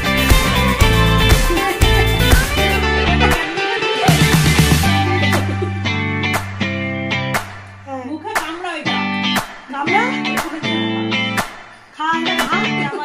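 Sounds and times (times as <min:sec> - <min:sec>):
plucked guitar notes: 0:00.0 - 0:11.4.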